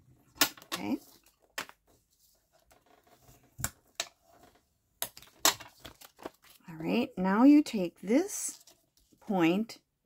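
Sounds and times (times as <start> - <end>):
paper rustling: 5.2 - 6.6.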